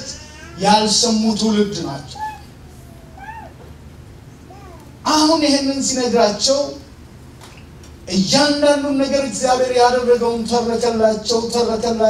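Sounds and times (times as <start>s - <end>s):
faint high-pitched cries: 0.0s - 1.0s, 1.9s - 3.8s, 4.4s - 5.0s
low steady hum: 0.0s - 12.0s.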